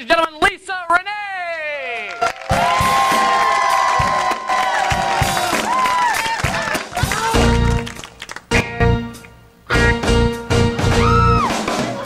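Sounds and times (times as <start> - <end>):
studio audience cheering: 1.8 - 8.4, 10.9 - 11.7.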